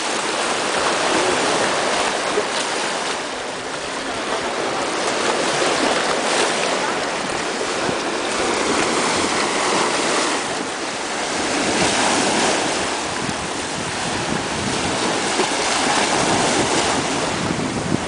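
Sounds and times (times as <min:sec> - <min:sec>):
sea water lapping over rocks: 0:00.0 - 0:18.0
wind on microphone: 0:00.0 - 0:18.0.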